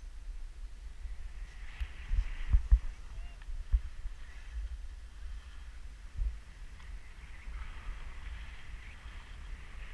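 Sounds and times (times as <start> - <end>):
skis scraping over snow: 0.6 - 9.9
skis thumping over bumps: 1.4 - 4.8.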